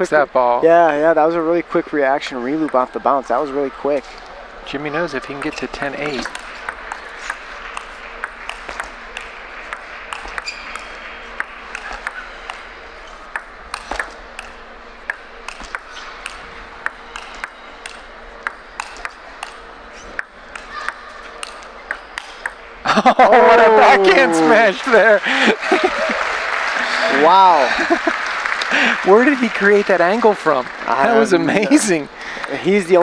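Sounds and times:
table tennis ball clicks: 0:05.2 - 0:22.6.

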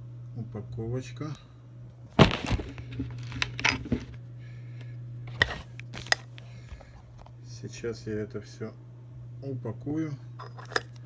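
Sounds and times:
steady low hum: 0:00.0 - 0:11.0
plastic bag rustling: 0:02.2 - 0:04.2.

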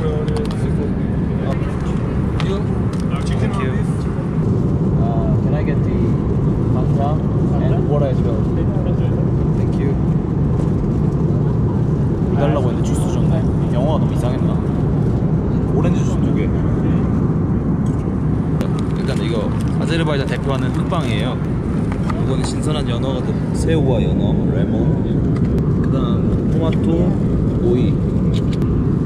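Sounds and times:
airliner cabin drone: 0:00.0 - 0:29.0
voices: 0:00.0 - 0:29.0.

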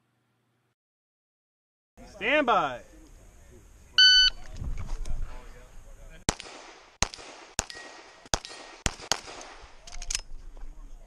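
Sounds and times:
pistol shots with ringing echo: 0:06.3 - 0:09.9.

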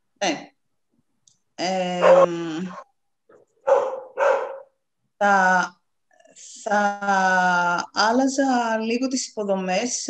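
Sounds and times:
woman saying eh: 0:01.6 - 0:02.8, 0:05.2 - 0:05.7, 0:06.6 - 0:10.0
dog barking: 0:02.0 - 0:02.8, 0:03.6 - 0:04.8.

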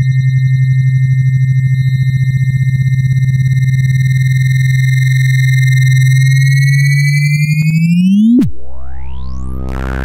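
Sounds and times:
steady low synthesized tone: 0:07.6 - 0:10.0.

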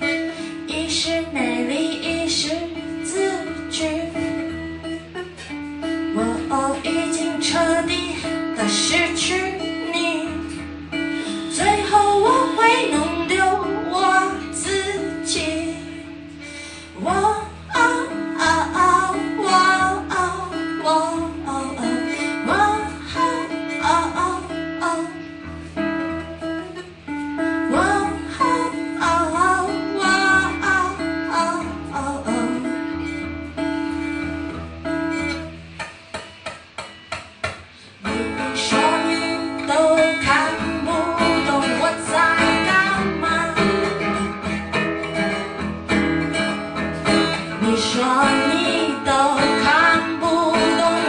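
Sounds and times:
woman singing: 0:00.0 - 0:34.4, 0:38.0 - 0:51.0
acoustic guitar chords: 0:00.0 - 0:51.0.

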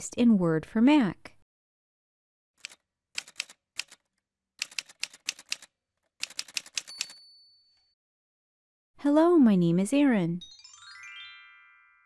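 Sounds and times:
typewriter keys striking: 0:02.6 - 0:07.2
typewriter bell ding: 0:06.6 - 0:07.9.

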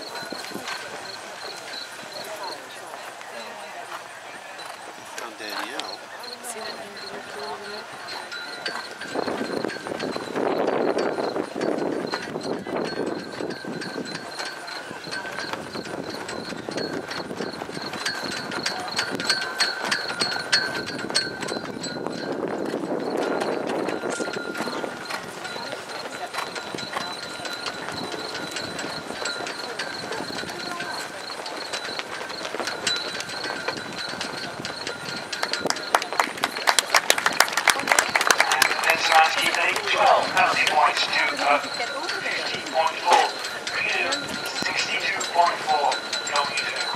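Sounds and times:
crowd murmur: 0:00.0 - 0:46.9
horse hoofbeats cantering: 0:00.0 - 0:46.9.

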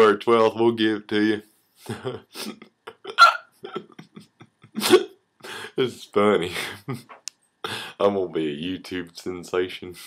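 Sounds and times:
man's stifled laughter: 0:01.8 - 0:05.7.

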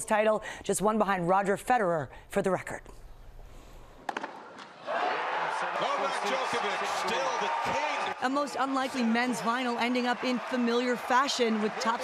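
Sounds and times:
crowd cheering: 0:04.6 - 0:12.0.

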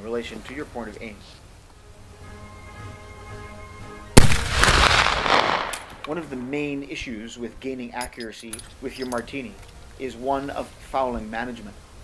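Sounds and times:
rifle shot with echo: 0:04.2 - 0:06.1.

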